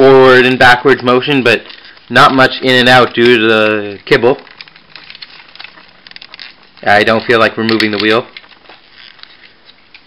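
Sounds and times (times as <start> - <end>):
person speaking: 0.0 - 4.6, 6.8 - 8.4.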